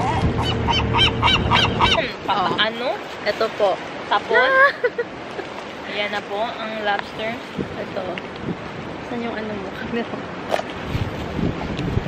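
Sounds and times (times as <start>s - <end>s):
seagull calling: 0.0s - 2.8s
wind rumble on microphone: 0.0s - 5.0s, 5.9s - 12.0s.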